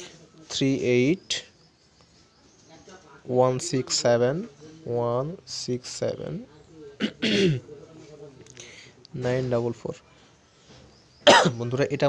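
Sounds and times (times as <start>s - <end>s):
man clearing throat: 7.0s - 7.6s, 11.2s - 11.6s.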